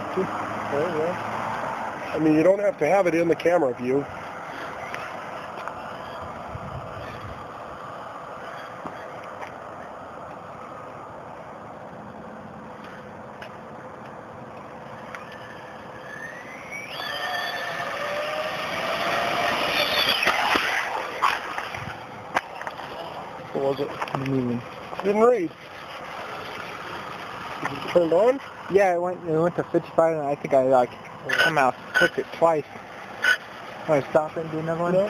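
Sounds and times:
high-pitched motor whine: 0.0 - 9.9, 14.5 - 35.0.

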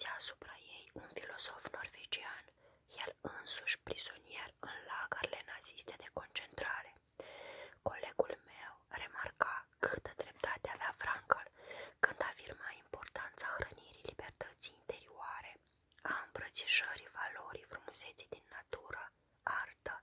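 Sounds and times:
woman whispering: 0.0 - 7.0, 7.8 - 20.0.

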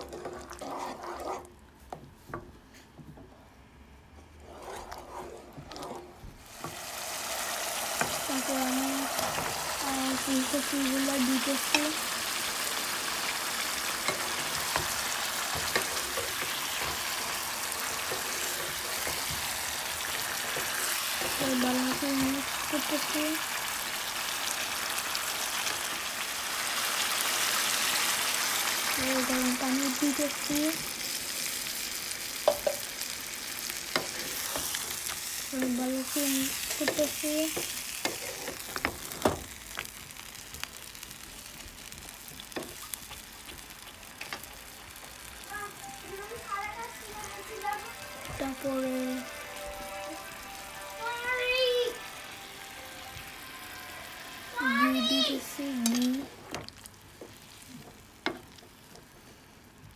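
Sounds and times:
wooden spatula stirring: 0.0 - 2.4, 4.3 - 6.8
vegetables sizzling in oil: 6.4 - 59.9.

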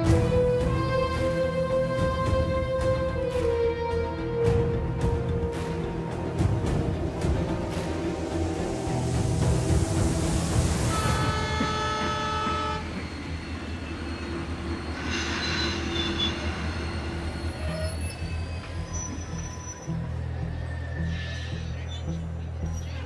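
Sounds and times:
background music: 0.0 - 23.0
railway train: 0.0 - 23.0.

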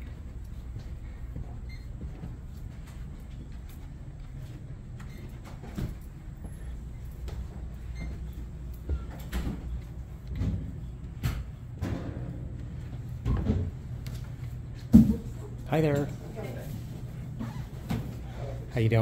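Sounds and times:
footsteps on carpeted stairs: 0.0 - 11.7.

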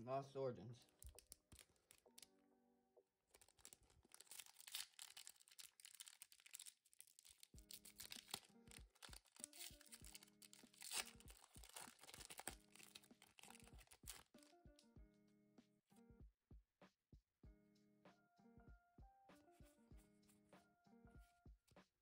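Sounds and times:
faint background music: 0.0 - 2.7, 3.3 - 16.3, 17.5 - 21.9
foil wrapper crinkling and tearing: 0.9 - 2.3, 3.3 - 14.5.

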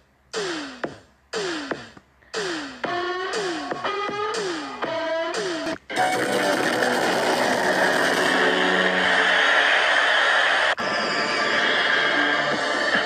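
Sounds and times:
loud dense rushing noise: 6.6 - 13.0.

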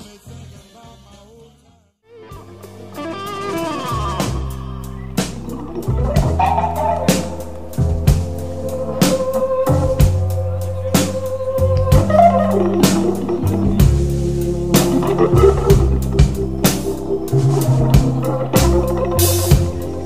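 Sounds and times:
organ playing blues: 2.2 - 20.0
drum hits: 2.8 - 10.3, 11.0 - 20.0.

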